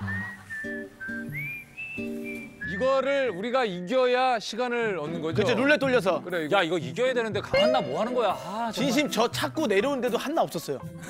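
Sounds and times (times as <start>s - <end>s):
whistled melody: 0.0s - 4.3s, 7.5s - 8.8s
man speaking: 7.3s - 9.5s
plucked guitar chords: 7.5s - 8.8s.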